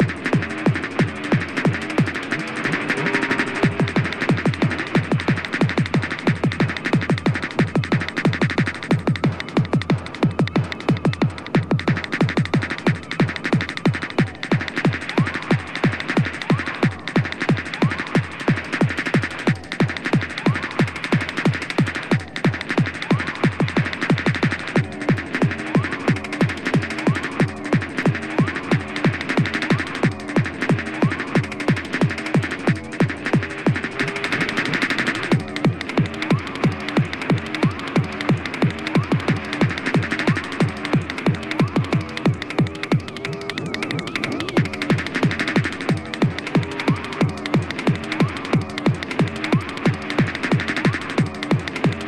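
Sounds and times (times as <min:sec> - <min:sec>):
electronic wash: 0:00.0 - 0:52.0
hard kick drum: 0:00.0 - 0:52.0
stuttering synth riff: 0:00.0 - 0:52.0.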